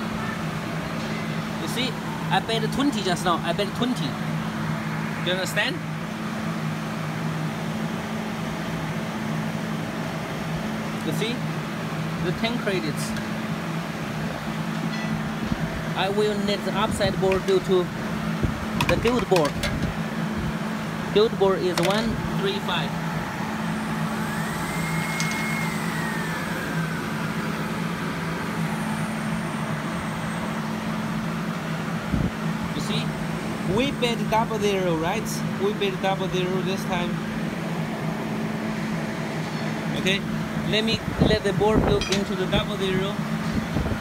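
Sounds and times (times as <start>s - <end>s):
low mechanical hum: 0.0s - 44.0s
rising and falling whine: 0.0s - 44.0s.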